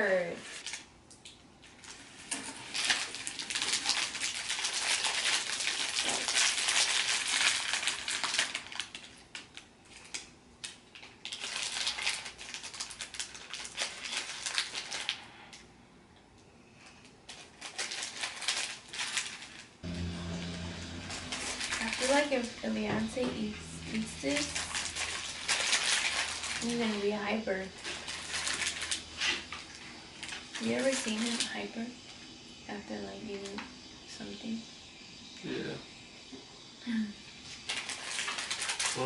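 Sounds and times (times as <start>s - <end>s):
plastic bags crinkling: 2.2s - 15.2s, 17.3s - 19.7s, 24.4s - 31.5s, 37.7s - 39.0s.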